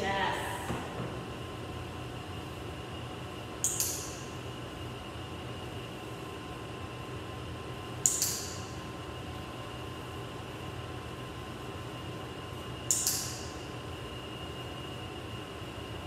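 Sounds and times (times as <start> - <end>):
steady mechanical hum: 0.0 - 16.0
sharp clicks: 3.6 - 4.2, 8.0 - 8.6.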